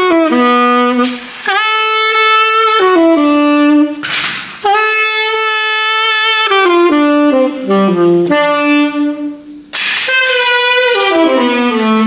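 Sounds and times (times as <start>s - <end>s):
saxophone playing: 0.0s - 12.0s.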